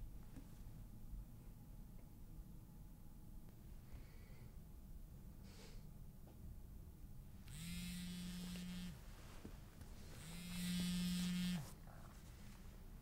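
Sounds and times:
mobile phone vibrating: 7.4s - 9.1s, 10.0s - 11.8s.

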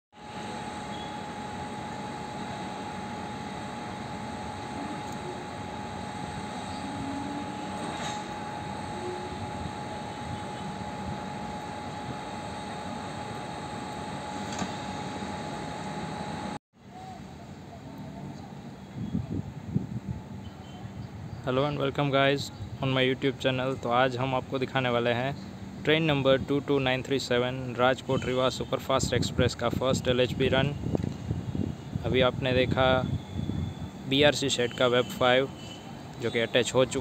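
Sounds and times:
electric locomotive humming and whining: 0.2s - 21.5s, 22.5s - 37.0s.

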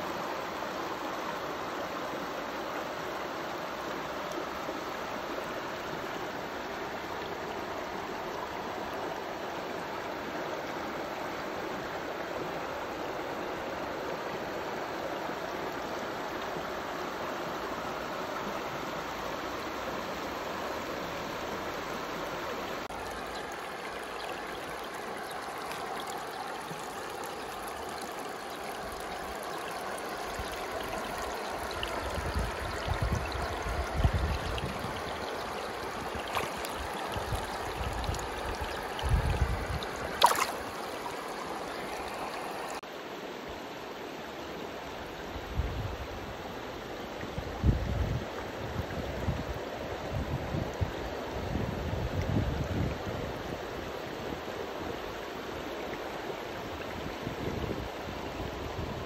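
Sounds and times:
stream running over rocks: 0.0s - 59.0s.

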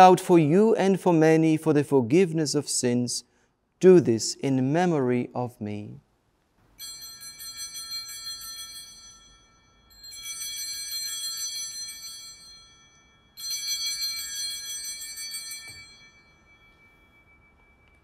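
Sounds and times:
altar bells jingling: 6.8s - 18.0s.

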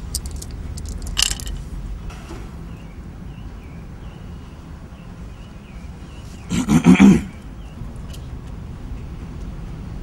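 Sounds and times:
low steady background hum: 0.0s - 10.0s.

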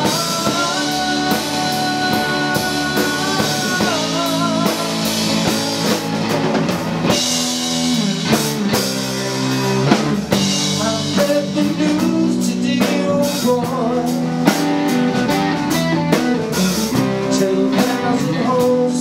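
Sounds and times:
guitar bending notes: 0.0s - 11.2s, 13.8s - 17.7s
blues-rock band playing: 0.0s - 19.0s.

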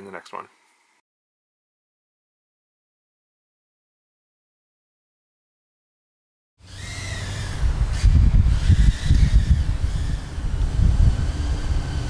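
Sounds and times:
wind rumble on microphone: 7.2s - 12.0s.

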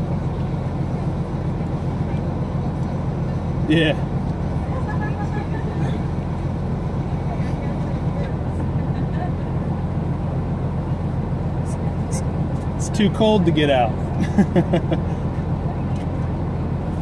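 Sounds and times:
car engine idling: 0.0s - 17.0s.

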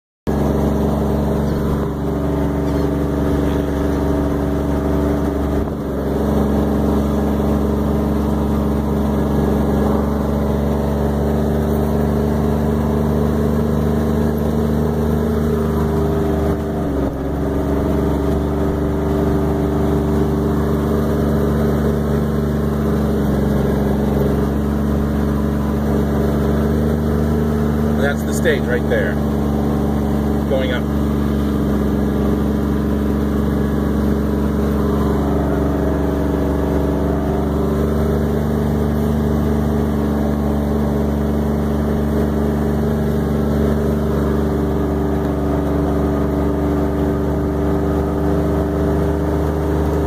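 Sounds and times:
vehicle engine drone: 0.3s - 50.0s.

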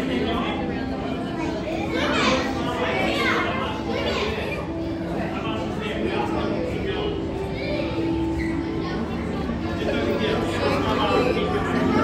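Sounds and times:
children's voices and chatter: 0.0s - 12.0s.

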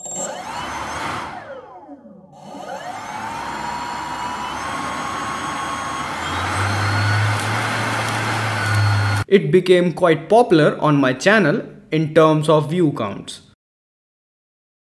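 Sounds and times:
ducted fan whining: 0.0s - 9.2s.

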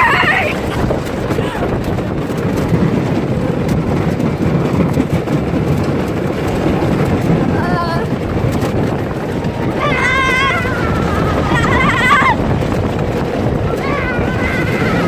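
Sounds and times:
rider yelling: 0.0s - 0.7s, 9.7s - 12.4s, 13.7s - 15.0s
roller coaster rumbling on track: 0.0s - 15.0s.

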